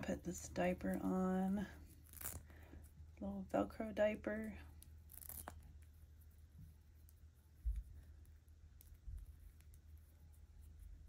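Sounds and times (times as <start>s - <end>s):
velcro ripping open: 1.9s - 2.5s, 5.0s - 5.6s.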